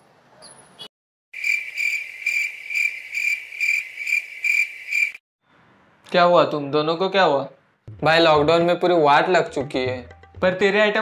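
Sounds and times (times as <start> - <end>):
cricket chirping: 1.4 - 5.2.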